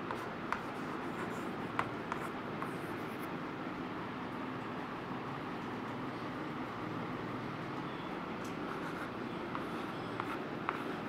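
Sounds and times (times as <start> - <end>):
chalk writing on blackboard: 0.0 - 3.3, 8.7 - 11.0
sharp chalk taps: 0.0 - 3.3, 8.5 - 11.0
steady background noise: 0.0 - 11.0.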